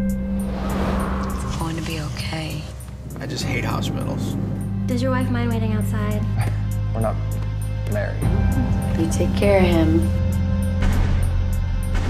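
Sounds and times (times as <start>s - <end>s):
car whooshing by: 0.0s - 5.0s
low droning music: 0.0s - 12.0s.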